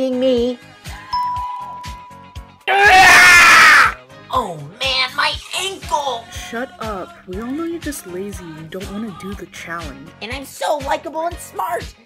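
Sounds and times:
background music with steady beat: 0:00.0 - 0:03.0, 0:03.9 - 0:12.0
cartoon character screaming: 0:02.7 - 0:04.0.

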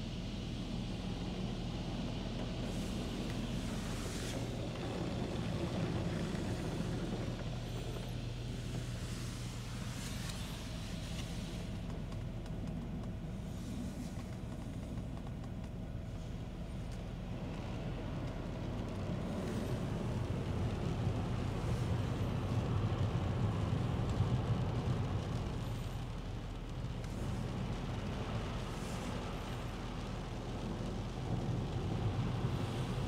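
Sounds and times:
muffled car wash machinery rumble: 0:00.0 - 0:33.0
water spraying on car body: 0:26.9 - 0:33.0.

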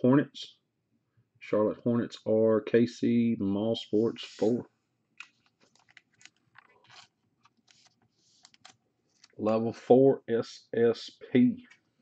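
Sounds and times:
trading card clicks and rustles: 0:05.2 - 0:09.4.

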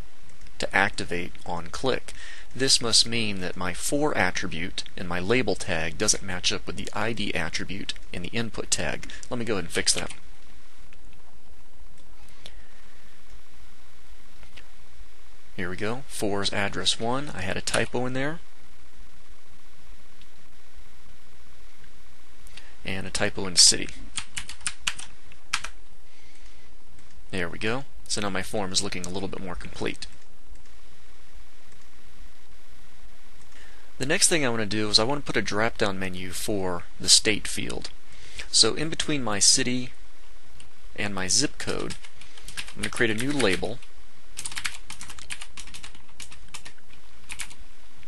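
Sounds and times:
keyboard typing: 0:09.0 - 0:10.2, 0:24.1 - 0:25.8, 0:41.6 - 0:47.6.

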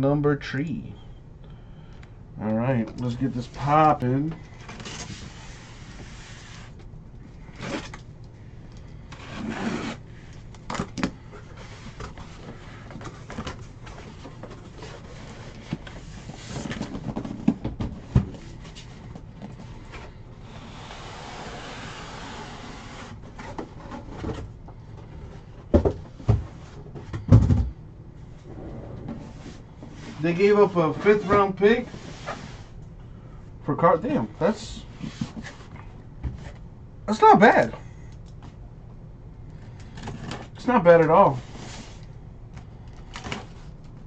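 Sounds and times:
cardboard rubbing: 0:09.1 - 0:10.0.

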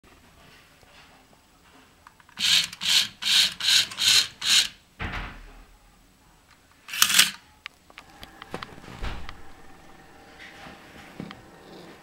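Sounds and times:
toy car motor bursts: 0:02.4 - 0:04.8.

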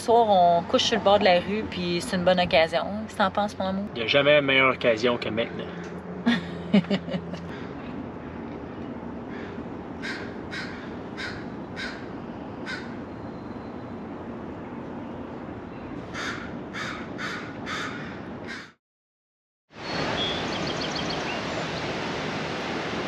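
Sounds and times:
outdoor background hum: 0:00.0 - 0:18.8
crow cawing: 0:09.3 - 0:13.0, 0:16.1 - 0:18.8.

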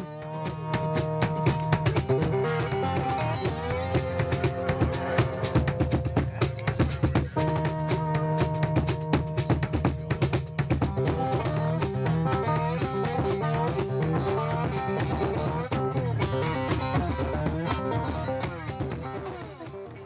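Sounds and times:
bass and percussion: 0:00.0 - 0:20.0
slide guitar melody: 0:00.0 - 0:20.0.

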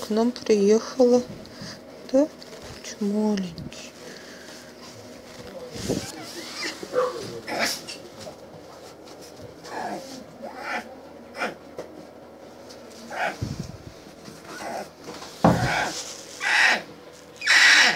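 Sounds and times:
bear cub crying: 0:06.1 - 0:08.0, 0:09.6 - 0:11.6, 0:13.1 - 0:13.4, 0:14.4 - 0:14.9, 0:15.5 - 0:17.9.

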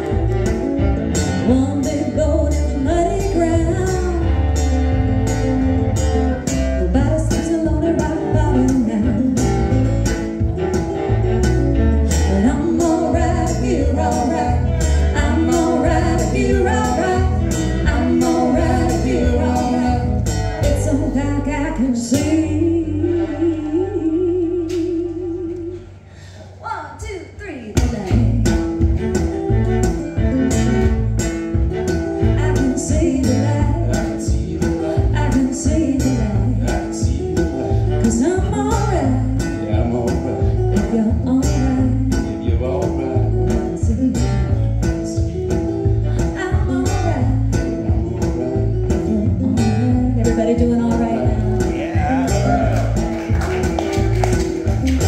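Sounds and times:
acoustic guitar strumming: 0:00.0 - 0:23.7, 0:27.8 - 0:55.0
bass guitar: 0:00.0 - 0:55.0
woman singing: 0:01.4 - 0:04.6, 0:06.8 - 0:10.1, 0:12.1 - 0:25.9, 0:26.9 - 0:28.9, 0:32.2 - 0:39.6, 0:40.7 - 0:42.4, 0:43.0 - 0:53.0.

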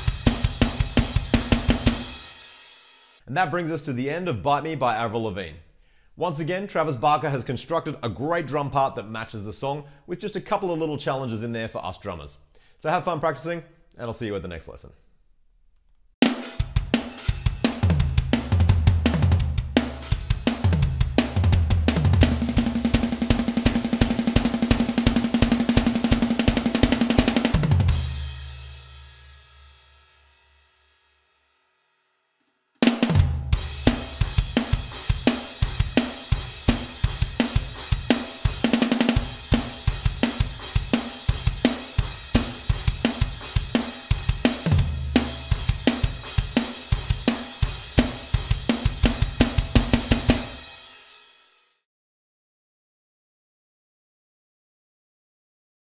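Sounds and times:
electronic drum kit rock beat: 0:00.0 - 0:02.4, 0:16.2 - 0:29.0, 0:32.8 - 0:50.9
pop-punk band track: 0:00.0 - 0:02.4, 0:16.5 - 0:28.6, 0:32.8 - 0:50.8.

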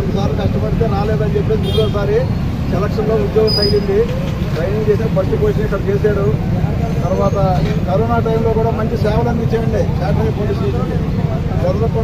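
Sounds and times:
loud low traffic rumble: 0:00.0 - 0:12.0.

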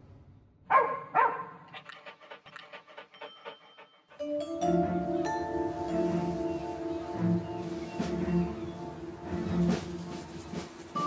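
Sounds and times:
dog panting: 0:01.6 - 0:05.2.

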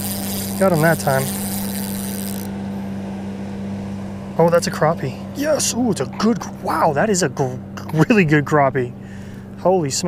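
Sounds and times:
spinning reel cranking: 0:00.0 - 0:02.5
electric motor humming: 0:00.0 - 0:04.4.

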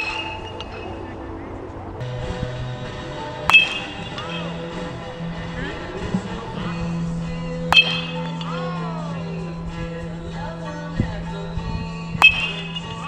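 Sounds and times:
baseball bat cracking ball: 0:00.0 - 0:01.1, 0:02.0 - 0:13.0
background music: 0:00.0 - 0:13.0.

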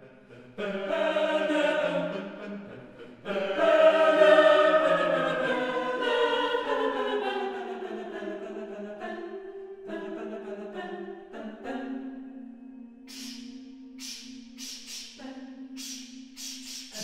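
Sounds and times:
choir singing sustained chords: 0:00.0 - 0:17.0.

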